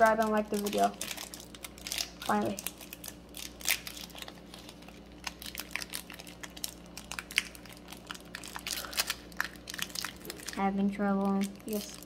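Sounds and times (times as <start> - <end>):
foil wrapper crinkling: 0.0 - 12.0
foil wrapper tearing: 0.0 - 12.0.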